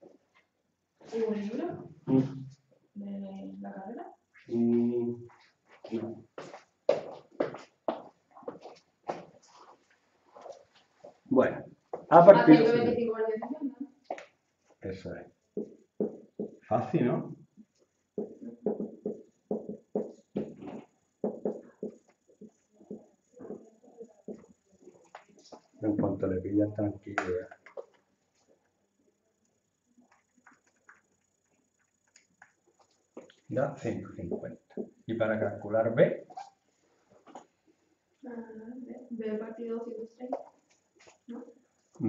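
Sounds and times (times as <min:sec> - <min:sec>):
quiet indistinct speech: 0:03.3 - 0:05.2, 0:14.8 - 0:15.2, 0:16.7 - 0:17.3, 0:25.8 - 0:27.4, 0:33.5 - 0:36.2
soft murmuring voice: 0:04.5 - 0:05.2, 0:16.7 - 0:17.2, 0:25.8 - 0:27.4, 0:33.5 - 0:34.5.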